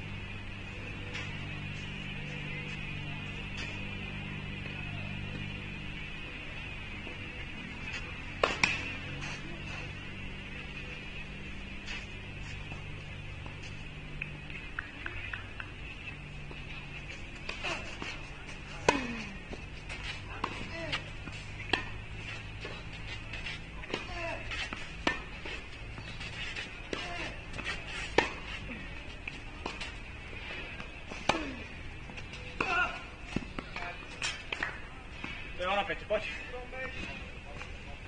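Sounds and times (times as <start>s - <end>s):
racquets hitting tennis ball: 0.2s - 38.0s.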